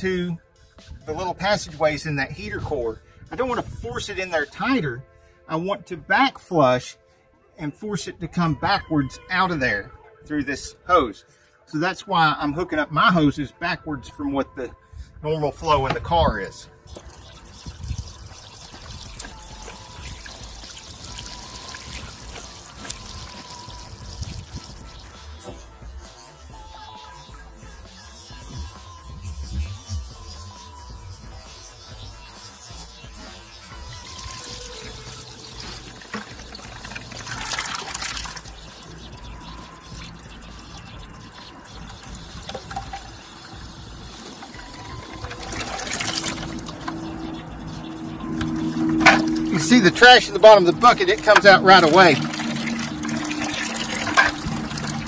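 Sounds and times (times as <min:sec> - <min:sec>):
light background music: 0:00.0 - 0:55.0
water running from hose into bucket: 0:15.6 - 0:55.0.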